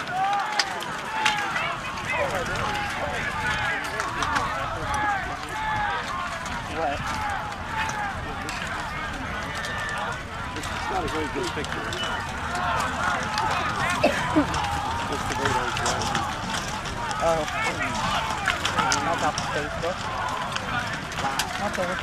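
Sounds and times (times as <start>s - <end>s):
crowd shouting and yelling: 0.0s - 22.0s.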